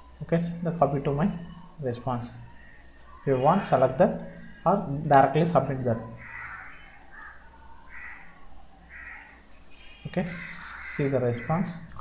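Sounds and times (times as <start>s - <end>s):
faint bird calls: 1.2s - 12.0s.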